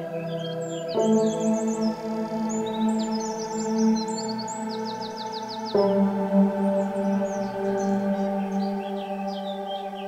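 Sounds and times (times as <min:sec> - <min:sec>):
bird chirping: 0:00.0 - 0:10.0.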